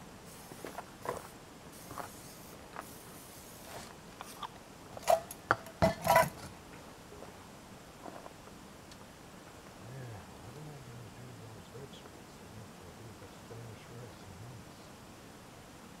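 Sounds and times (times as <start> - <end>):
camp cookware clinking: 5.0 - 6.5.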